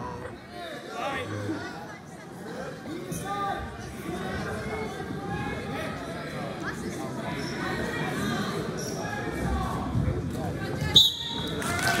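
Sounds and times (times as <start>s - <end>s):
voices in a gym: 0.0s - 12.0s.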